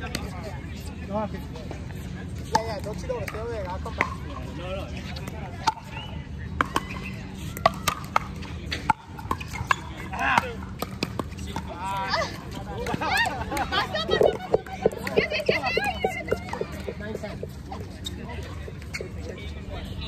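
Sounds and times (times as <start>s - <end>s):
people talking: 0.0s - 9.0s, 11.4s - 20.0s
paddles striking plastic balls: 7.6s - 11.8s, 12.8s - 17.6s.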